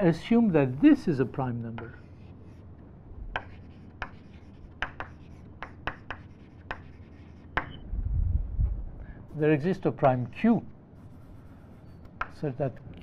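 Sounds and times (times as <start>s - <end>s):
low room hum: 0.0s - 13.0s
chalk tapping on blackboard: 1.7s - 2.6s, 3.3s - 7.8s, 11.0s - 12.5s.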